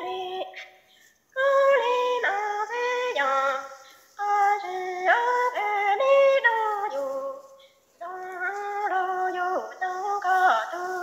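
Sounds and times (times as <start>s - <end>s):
woman singing long gliding notes: 0.0s - 11.0s.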